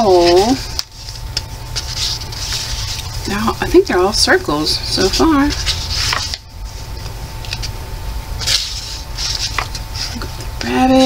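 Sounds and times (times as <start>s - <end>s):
paper pages rustling: 0.0s - 3.2s, 5.0s - 7.8s, 8.4s - 10.8s.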